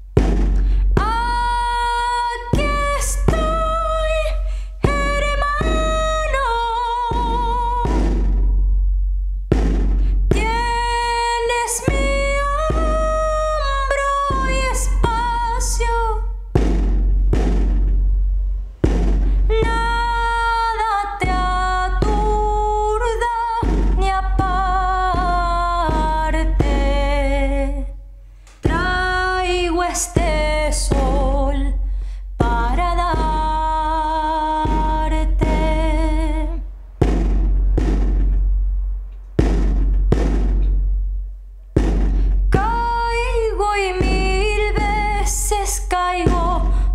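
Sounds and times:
frame drum beats: 0.0 - 46.9.

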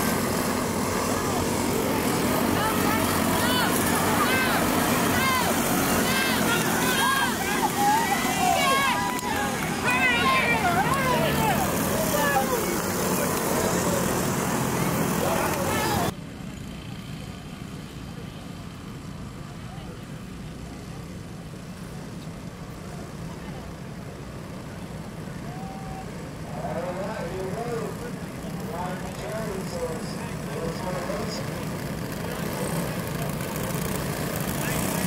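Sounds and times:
distant engine drone: 0.0 - 35.0
go-kart engines running: 0.0 - 35.0.

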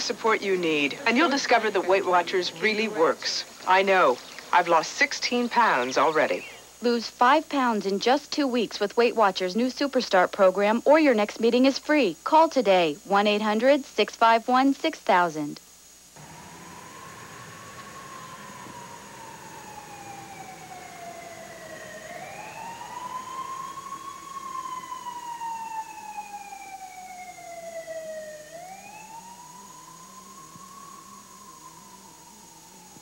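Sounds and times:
police siren wailing: 16.2 - 33.0.

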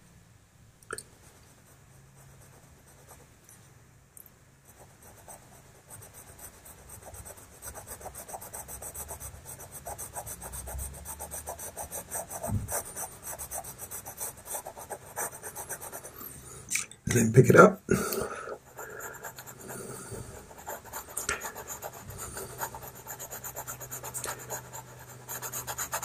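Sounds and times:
pastel pencil scratching on paper: 1.2 - 3.2, 4.7 - 16.4, 18.6 - 26.0.

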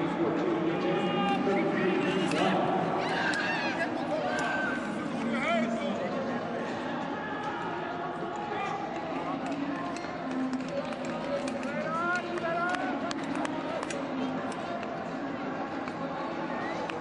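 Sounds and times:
crowd hubbub: 0.0 - 17.0
people calling out: 0.8 - 5.0.

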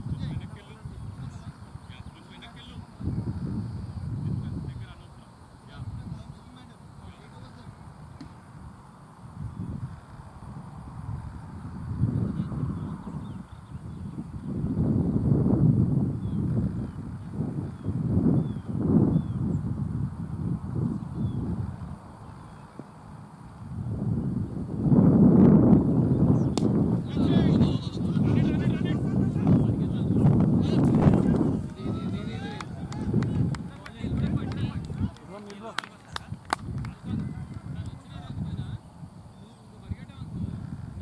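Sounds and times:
wind rumble on microphone: 0.0 - 5.1, 5.7 - 41.0
distant players shouting: 26.6 - 38.4.

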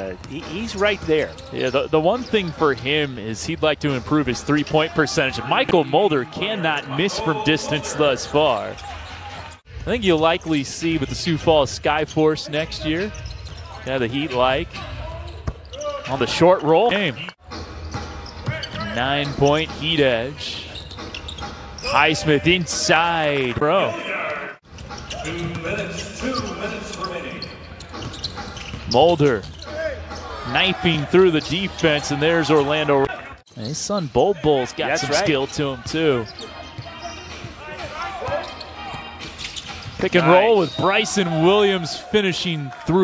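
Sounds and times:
commentator talking: 0.0 - 8.8, 21.8 - 24.5, 30.4 - 36.4.

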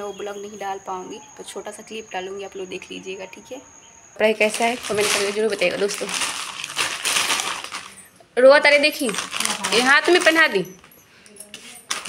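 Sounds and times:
plastic packaging crinkling: 4.4 - 10.7, 11.7 - 12.0.

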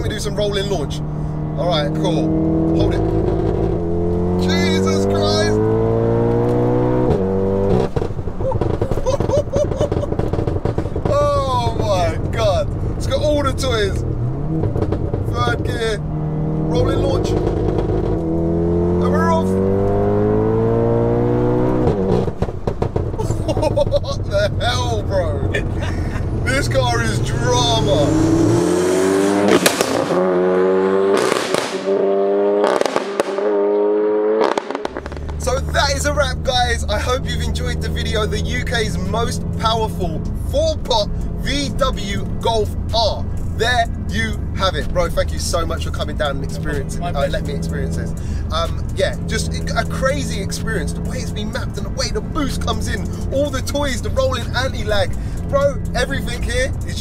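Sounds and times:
car engine revving at full throttle: 0.0 - 57.0
exhaust pops and crackles: 2.0 - 28.1, 29.3 - 30.2, 31.1 - 33.6, 34.4 - 57.0.

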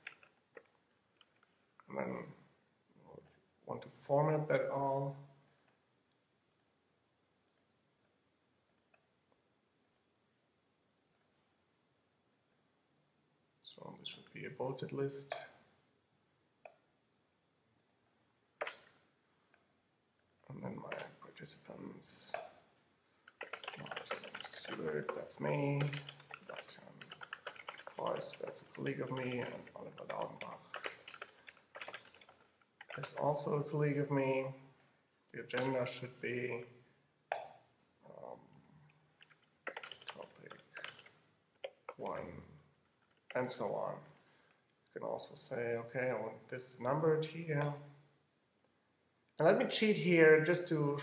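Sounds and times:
computer mouse clicks: 7.4 - 7.7, 11.0 - 11.3, 18.6 - 19.0, 20.2 - 21.1, 23.3 - 33.5, 38.8 - 42.3.

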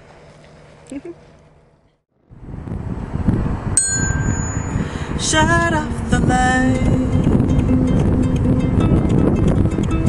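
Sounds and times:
wind rumble on microphone: 2.2 - 10.0
glockenspiel note: 3.8 - 4.9.

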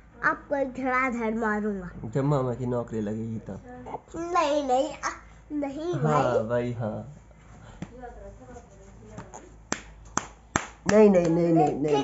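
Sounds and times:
hand slapping a back: 9.1 - 12.0.

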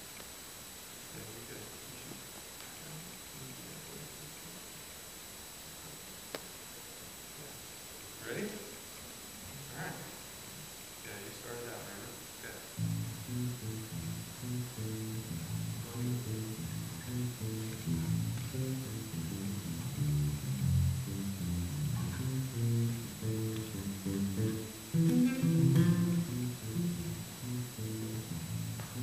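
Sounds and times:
electric bass jazz solo: 12.8 - 29.0.

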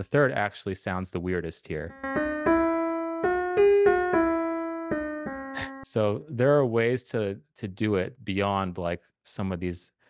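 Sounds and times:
piano playing a scale: 1.9 - 5.9.

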